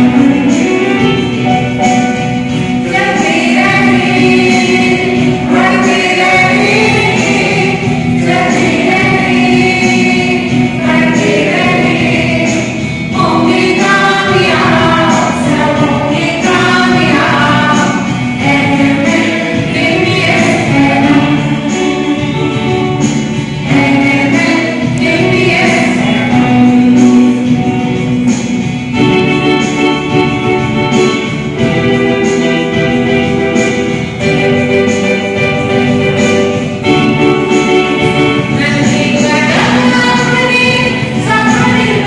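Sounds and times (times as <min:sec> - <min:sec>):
students singing in chorus: 0:00.0 - 0:42.0.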